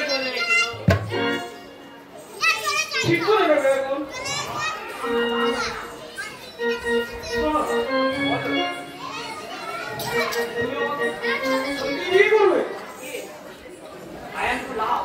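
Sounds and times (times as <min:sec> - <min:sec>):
instrument playing melody: 0:06.6 - 0:09.0, 0:10.2 - 0:12.2.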